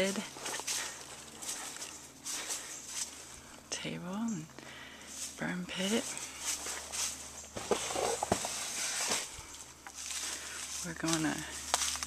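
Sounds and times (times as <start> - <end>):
footsteps through dry leaves: 0.0 - 3.4, 5.1 - 12.0.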